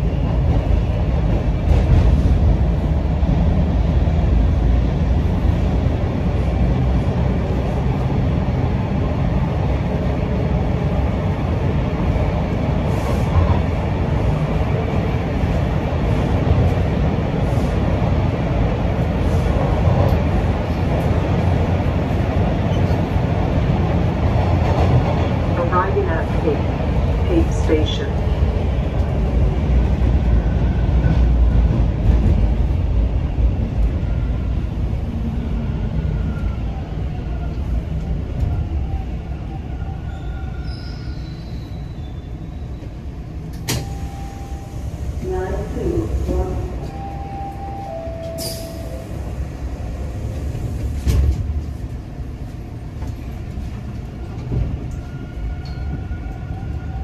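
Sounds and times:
subway train rumbling: 0:00.0 - 0:57.0
train brake squeal: 0:40.1 - 0:42.4, 0:48.2 - 0:48.9.

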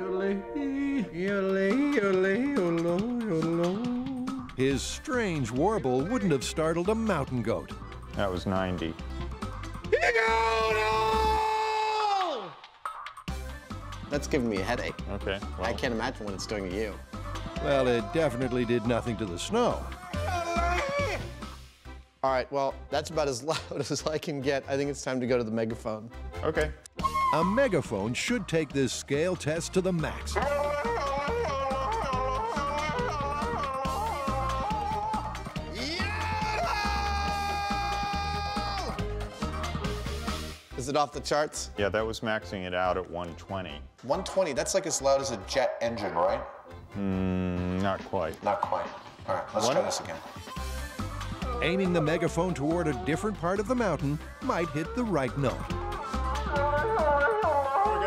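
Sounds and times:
man wailing: 0:09.9 - 0:12.4, 0:17.6 - 0:21.4, 0:30.3 - 0:39.0, 0:56.4 - 0:58.0
background music with bass beat: 0:29.6 - 0:40.8, 0:49.0 - 0:58.0
man yodelling through a megaphone: 0:30.4 - 0:35.3, 0:56.5 - 0:58.0.

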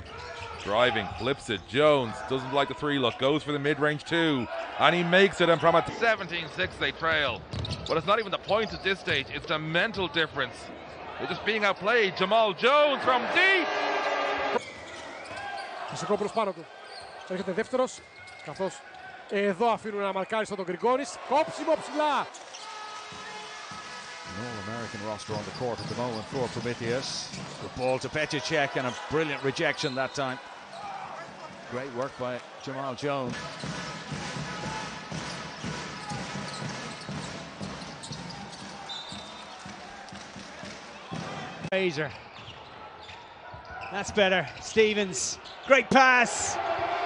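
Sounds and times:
players' voices: 0:00.0 - 0:36.6, 0:43.5 - 0:47.0
loud arena noise: 0:00.0 - 0:47.0.

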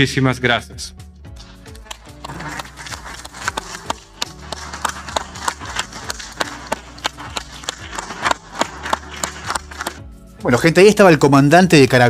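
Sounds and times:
audience clapping: 0:01.4 - 0:10.0.

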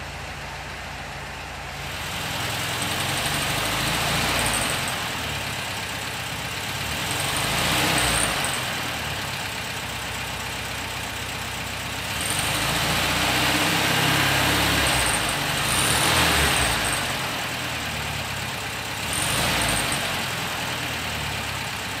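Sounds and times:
car engine idling and revving: 0:00.0 - 0:22.0.

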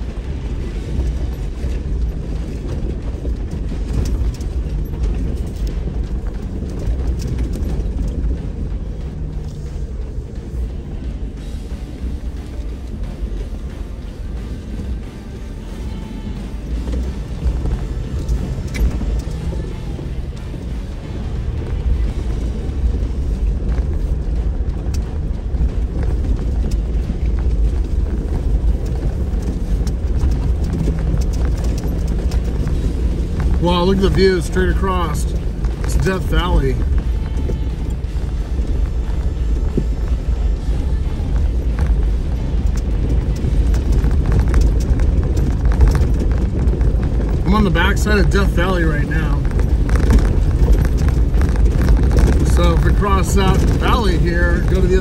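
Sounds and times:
low engine rumble: 0:00.0 - 0:55.0
tyres crunching over rocks: 0:00.0 - 0:55.0.

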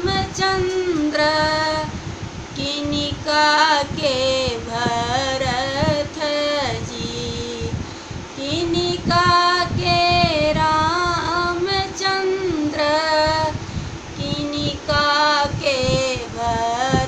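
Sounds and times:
woman singing unaccompanied: 0:00.0 - 0:17.0.

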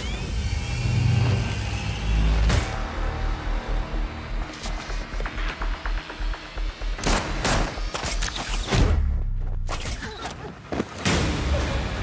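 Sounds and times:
pulsing low beat: 0:02.7 - 0:07.9.

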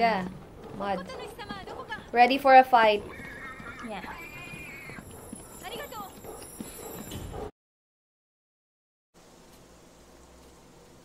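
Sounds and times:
whinny-like animal cry: 0:03.1 - 0:05.0.

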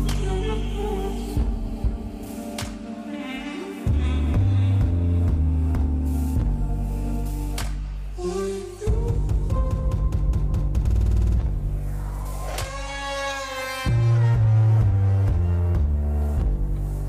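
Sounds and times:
electronic dance music: 0:11.5 - 0:15.9.

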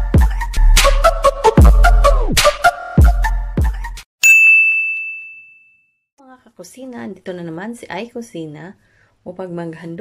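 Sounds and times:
bright bell-like ding: 0:04.2 - 0:05.9
woman speaking: 0:06.2 - 0:10.0.

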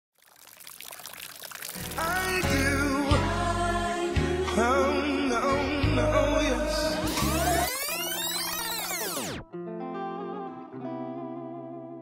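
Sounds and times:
hissing splashing noise: 0:00.2 - 0:02.5
music: 0:01.8 - 0:12.0.

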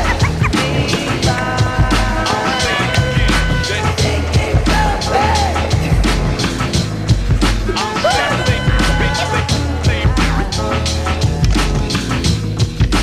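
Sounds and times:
music with drum beat and bass: 0:00.0 - 0:13.0.

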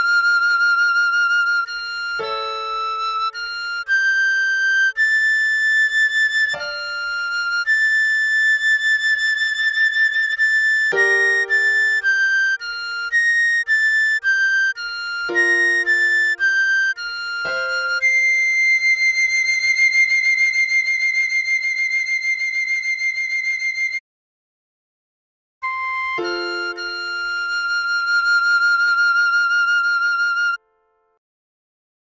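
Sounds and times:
recorder playing slow melody: 0:00.0 - 0:08.4, 0:10.9 - 0:20.4, 0:25.6 - 0:30.6
piano chords: 0:11.0 - 0:12.5, 0:15.3 - 0:18.6.

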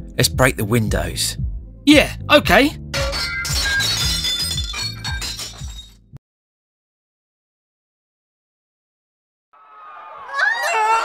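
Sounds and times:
glass shards clinking: 0:03.0 - 0:06.0
glass window shattering: 0:03.0 - 0:06.0.

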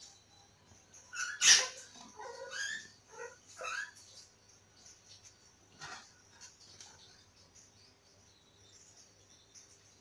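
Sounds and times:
animal high-pitched calls: 0:01.1 - 0:04.1.

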